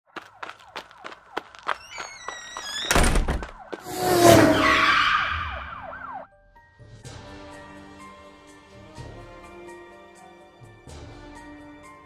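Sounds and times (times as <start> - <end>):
whoosh with falling tones: 3.8 - 6.2.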